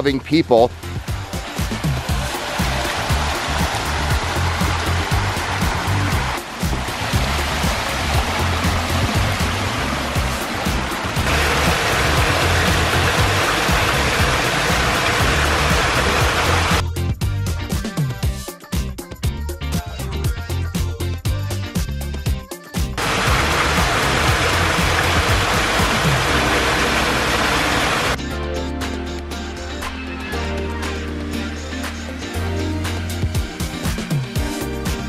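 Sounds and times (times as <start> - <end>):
background music with steady beat: 0.0 - 35.0
water splashing down a stream: 0.8 - 16.8, 23.0 - 28.2.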